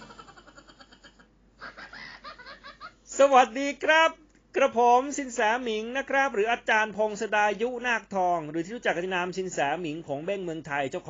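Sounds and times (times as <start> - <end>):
high-pitched laughter: 0.0 - 3.0.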